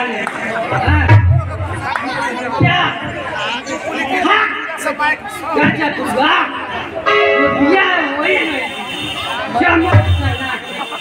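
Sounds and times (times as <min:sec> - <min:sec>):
voices talking through a microphone: 0:00.0 - 0:11.0
low thump: 0:09.9 - 0:10.3.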